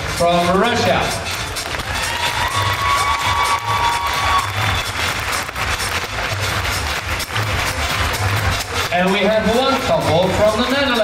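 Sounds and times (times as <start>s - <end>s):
music with steady beat: 0.0s - 11.0s
crowd cheering and applauding: 1.2s - 11.0s.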